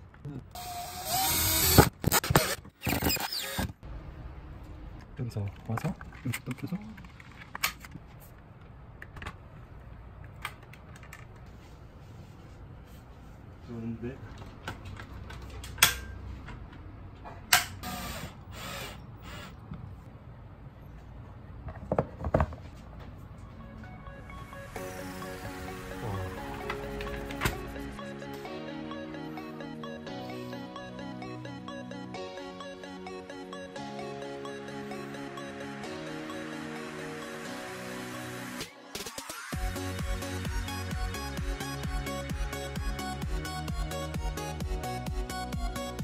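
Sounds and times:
cordless drill driving a screw: 0.6 - 3.7, 17.8 - 19.6
faint background music: 22.9 - 40.2.

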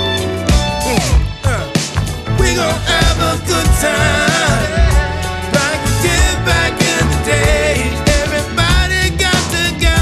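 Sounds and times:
person singing over a beat: 2.4 - 10.0.

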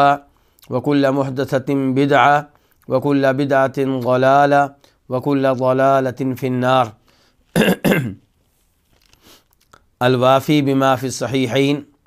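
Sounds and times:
man clearing his throat: 7.6 - 8.2.

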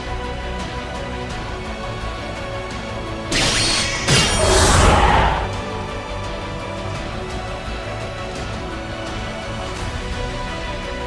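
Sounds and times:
background music: 0.0 - 11.0
deep rumble: 4.2 - 5.9.

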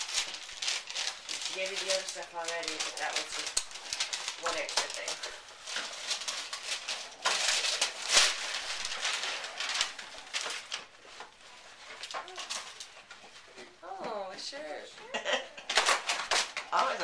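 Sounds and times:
wrapping paper tearing and crumpling: 0.0 - 13.8, 15.6 - 17.0.

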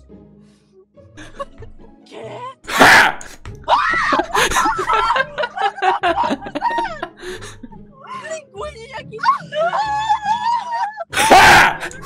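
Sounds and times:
young women laughing and squealing: 3.7 - 7.8, 9.1 - 12.0.

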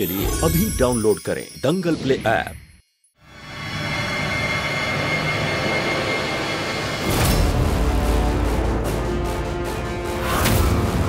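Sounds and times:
synthesized drone: 3.3 - 11.0.

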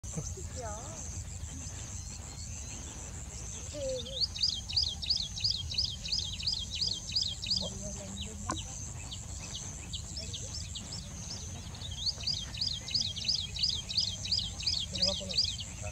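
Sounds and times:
bird singing high arching notes: 0.1 - 15.9.

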